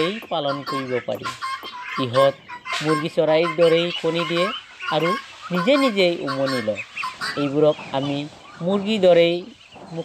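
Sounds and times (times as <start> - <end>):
fowl clucking calls: 0.0 - 10.0.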